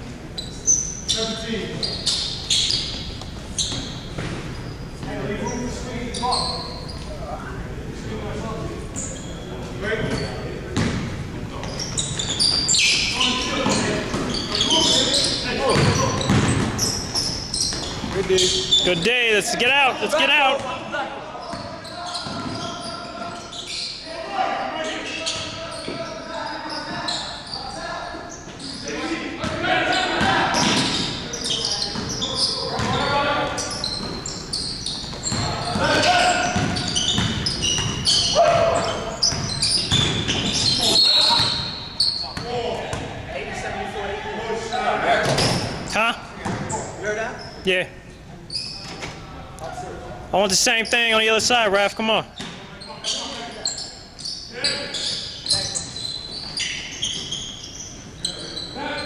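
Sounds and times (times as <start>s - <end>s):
basketball bouncing on hardwood: 10.8s - 11.0s, 15.7s - 16.8s, 36.6s - 38.6s.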